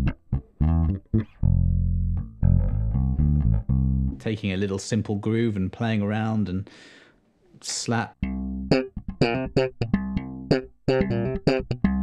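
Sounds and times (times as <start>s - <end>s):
electric bass guitar groove: 0.0s - 4.2s, 8.2s - 12.0s.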